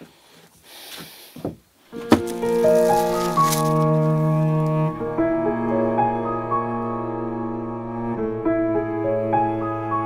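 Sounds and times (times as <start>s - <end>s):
wood rubbing and rustling: 0.0s - 5.0s.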